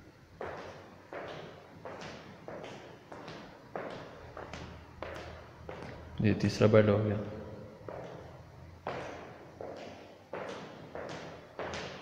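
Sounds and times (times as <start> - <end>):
footsteps on tiled floor: 0.0 - 6.2, 7.7 - 12.0.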